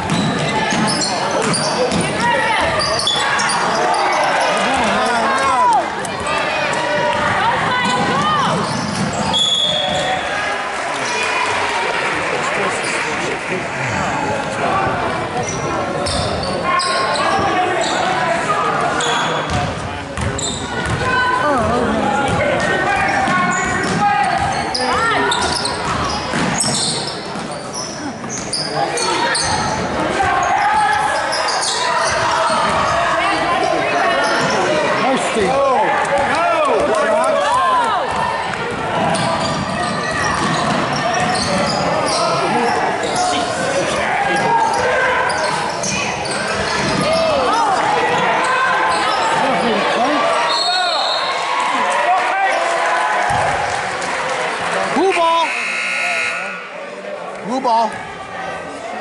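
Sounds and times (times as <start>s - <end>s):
sneakers squeaking: 0.0s - 10.4s, 15.4s - 18.2s, 18.9s - 34.9s, 37.5s - 51.4s
people calling out in a hall: 0.0s - 59.0s
referee's whistle: 9.3s - 10.1s, 50.5s - 51.4s, 55.0s - 56.8s.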